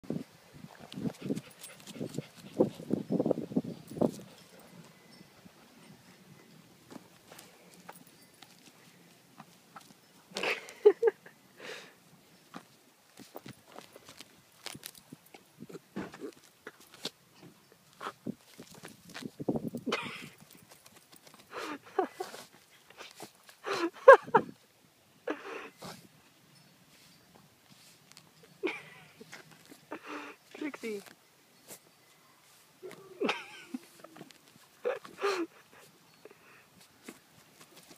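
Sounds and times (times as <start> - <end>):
dirt scratching: 12.5 - 17.2, 17.9 - 23.6, 36.8 - 37.9.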